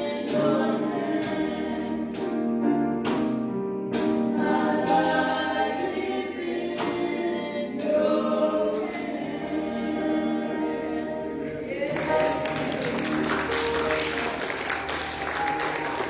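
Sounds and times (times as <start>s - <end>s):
two women singing gospel: 0.0s - 2.6s, 4.3s - 16.0s.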